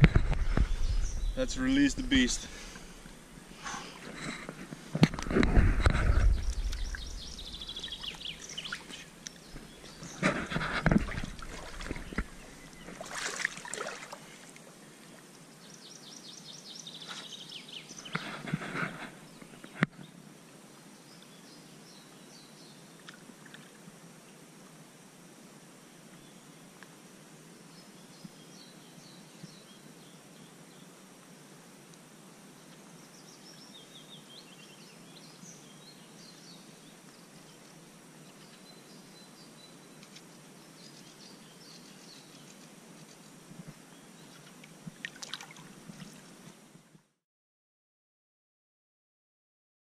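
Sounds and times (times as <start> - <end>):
small birds trilling: 0.0 - 4.8, 5.6 - 14.2
water splashing and sloshing: 3.9 - 14.7, 44.4 - 46.6.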